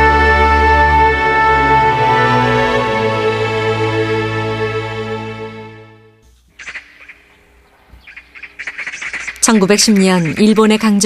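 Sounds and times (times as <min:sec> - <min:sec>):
birds chirping: 0:06.2 - 0:11.0.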